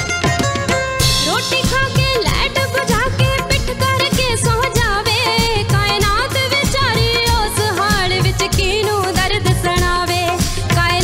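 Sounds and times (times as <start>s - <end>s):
live band with drum beat: 0.0s - 11.0s
woman singing: 1.1s - 11.0s.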